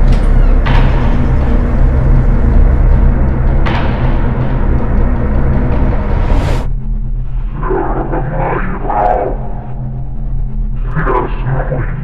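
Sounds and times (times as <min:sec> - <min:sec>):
dramatic film score with timpani: 0:00.0 - 0:12.0
indistinct voice-like sounds: 0:07.4 - 0:10.2, 0:10.8 - 0:12.0.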